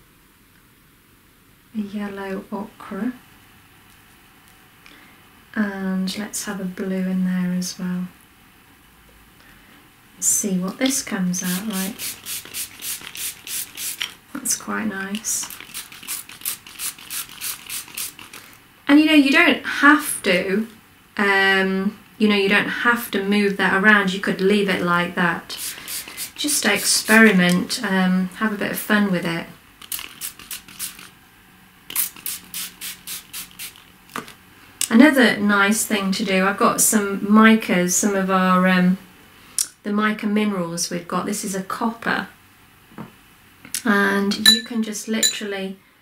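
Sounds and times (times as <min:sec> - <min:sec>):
spray bottle hissing spritzes: 0:11.5 - 0:14.1, 0:15.5 - 0:18.4, 0:32.0 - 0:33.8.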